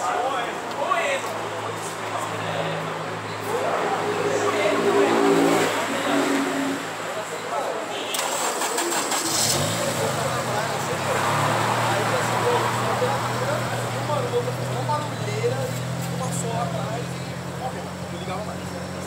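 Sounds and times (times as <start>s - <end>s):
car engine starting and idling: 8.1s - 19.0s
engine hum: 8.2s - 19.0s.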